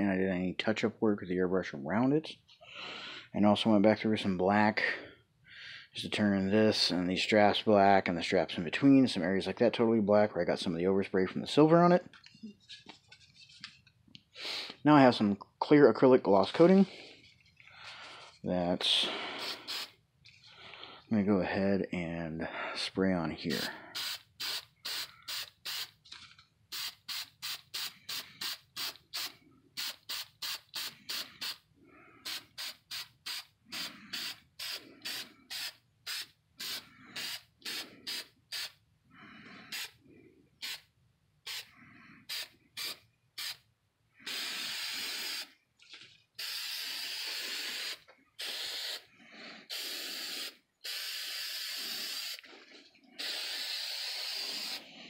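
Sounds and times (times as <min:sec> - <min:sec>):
aerosol can spraying: 0:19.4 - 0:19.9, 0:23.6 - 0:26.0, 0:26.7 - 0:31.6, 0:32.2 - 0:38.8, 0:40.6 - 0:40.8, 0:41.5 - 0:41.7, 0:42.3 - 0:43.6, 0:44.3 - 0:45.5, 0:46.4 - 0:49.1, 0:49.7 - 0:52.4, 0:53.2 - 0:54.9.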